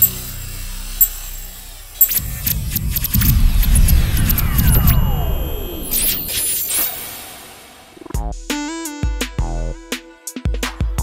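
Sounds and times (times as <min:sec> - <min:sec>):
electronic low drone: 0:00.0 - 0:08.3
sharp high tick: 0:02.0 - 0:07.1.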